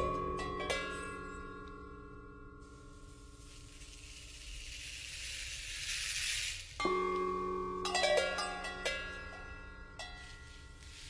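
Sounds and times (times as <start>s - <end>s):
struck metal ringing: 0.0s - 3.4s, 6.8s - 11.0s
seed shaker rattling: 3.3s - 6.8s
cowbell strikes: 6.8s - 10.8s.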